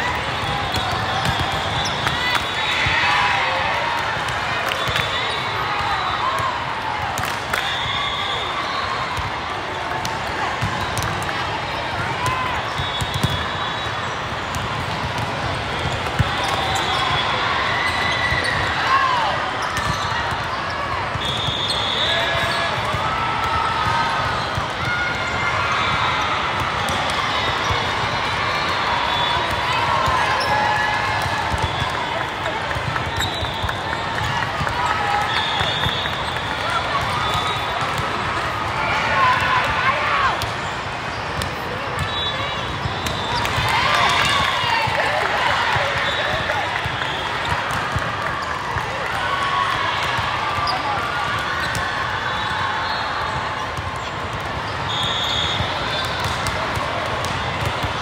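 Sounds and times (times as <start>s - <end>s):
volleyballs hit and bouncing: 0.0s - 58.0s.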